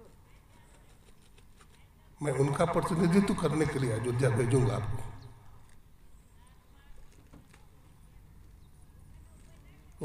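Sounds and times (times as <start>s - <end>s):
faint low rumble: 2.2s - 5.8s.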